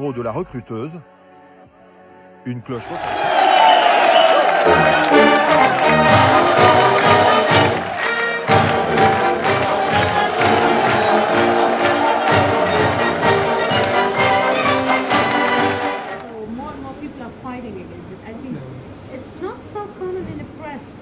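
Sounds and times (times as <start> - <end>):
crowd cheering: 2.8 - 16.3
brass marching band: 3.1 - 16.3.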